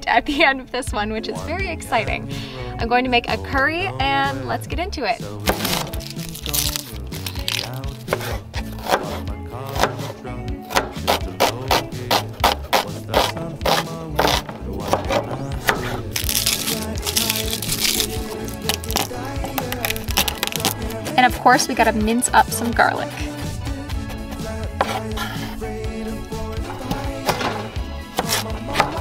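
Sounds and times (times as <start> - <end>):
background music: 0.0 - 29.0
knife chopping on wooden board: 5.5 - 6.0, 7.5 - 10.1, 10.7 - 16.0, 24.0 - 25.0, 26.8 - 29.0.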